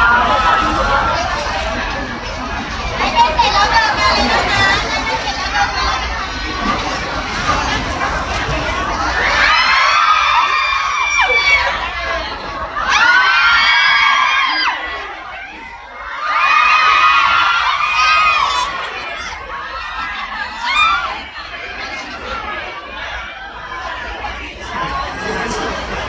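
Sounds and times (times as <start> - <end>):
crowd screaming and cheering: 0.0 - 4.9, 8.9 - 23.8
chatter: 0.0 - 26.0.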